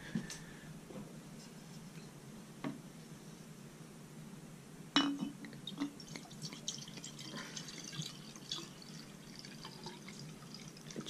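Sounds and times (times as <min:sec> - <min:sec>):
glass clinking on ceramic: 0:05.0 - 0:05.4
liquid trickling into flask: 0:05.7 - 0:11.0.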